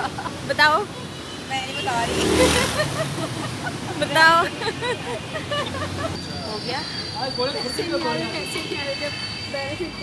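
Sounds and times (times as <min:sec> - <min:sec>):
street traffic road noise: 0:00.0 - 0:10.0
people chatting: 0:04.0 - 0:04.8.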